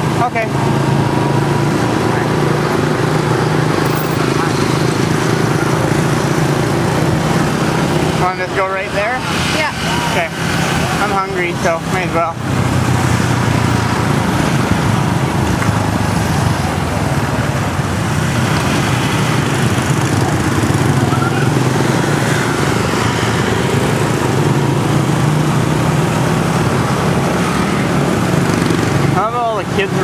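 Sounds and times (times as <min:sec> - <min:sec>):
street traffic noise: 0:00.0 - 0:30.0.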